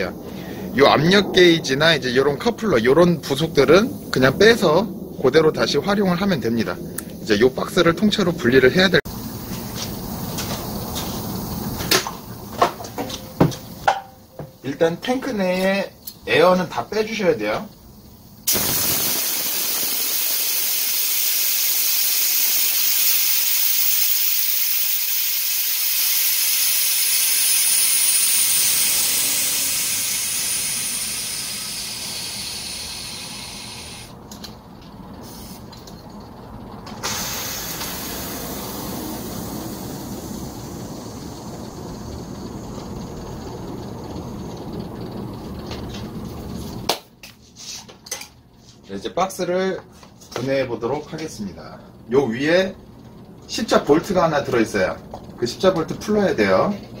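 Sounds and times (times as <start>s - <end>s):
compressed air hissing: 0.1s - 1.3s, 8.8s - 13.9s, 18.0s - 34.2s, 35.2s - 35.8s, 36.9s - 45.4s.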